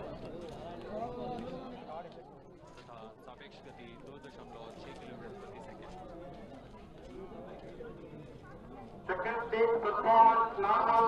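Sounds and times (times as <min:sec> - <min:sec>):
murmur of background voices: 0:00.0 - 0:11.0
person speaking loudly: 0:09.1 - 0:11.0.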